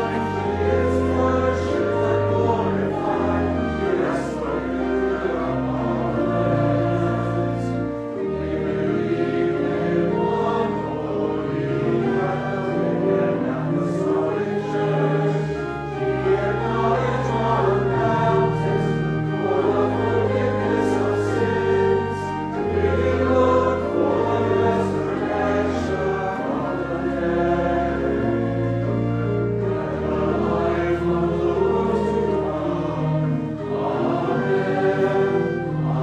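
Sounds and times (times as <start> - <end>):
choir singing sacred music: 0.0 - 36.0
organ: 0.0 - 36.0.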